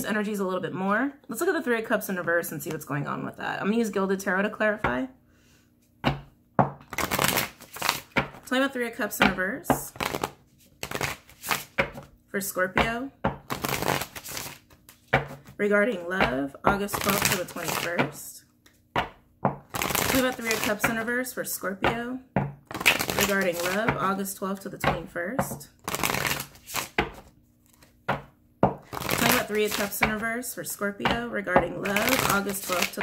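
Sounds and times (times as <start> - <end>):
cards being shuffled: 6.8 - 8.5, 9.2 - 12.1, 13.4 - 15.6, 16.2 - 21.3, 22.7 - 24.0, 25.8 - 30.2, 31.6 - 33.0.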